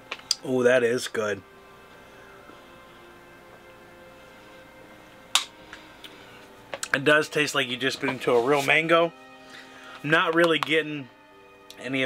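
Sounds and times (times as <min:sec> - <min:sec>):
quiet background music: 0:00.0 - 0:12.0
sharp smack: 0:05.4 - 0:05.6.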